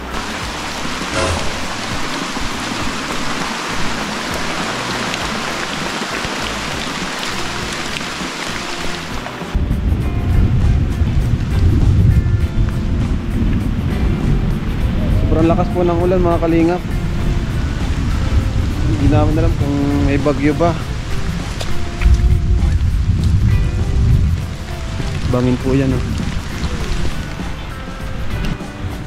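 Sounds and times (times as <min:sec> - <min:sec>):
heavy rain pouring: 0:00.0 - 0:28.6
strong low rumble: 0:01.1 - 0:03.3, 0:22.0 - 0:27.6.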